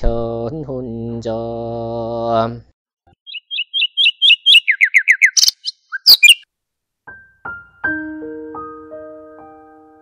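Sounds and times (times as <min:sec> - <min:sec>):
bird chirping: 0:03.2 - 0:06.5
harsh bird calls: 0:03.3 - 0:06.4.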